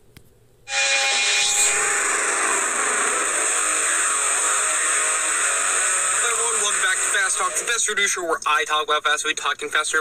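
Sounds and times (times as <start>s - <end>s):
faint music: 0.7s - 8.4s
loud rushing hiss: 0.8s - 7.8s.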